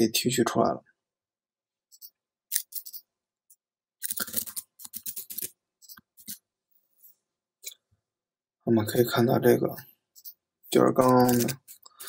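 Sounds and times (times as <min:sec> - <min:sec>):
keyboard and mouse clicks: 0:01.9 - 0:03.1, 0:04.0 - 0:06.4, 0:10.2 - 0:12.0.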